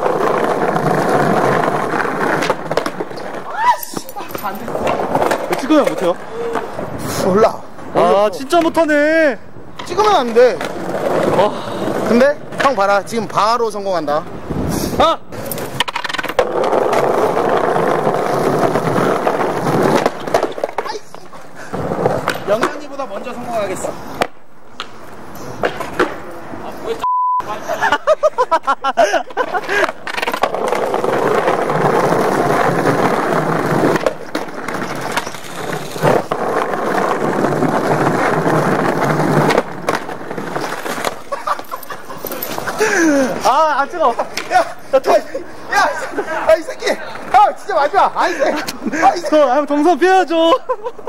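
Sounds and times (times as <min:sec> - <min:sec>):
skateboard clacking on ground: 0:00.0 - 0:14.1, 0:15.3 - 0:27.0, 0:29.3 - 0:50.6
skateboard wheels rolling on stone: 0:00.0 - 0:27.0, 0:27.7 - 0:51.0.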